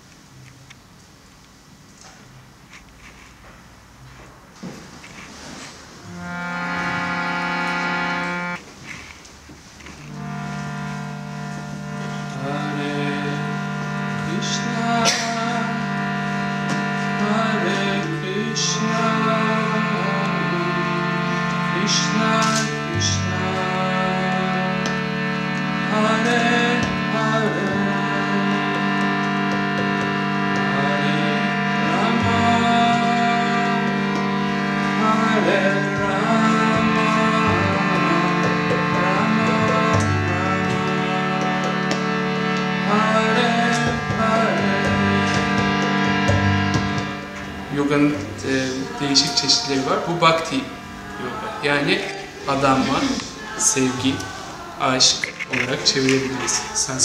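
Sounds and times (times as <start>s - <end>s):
harmonium chords: 0.0s - 57.0s.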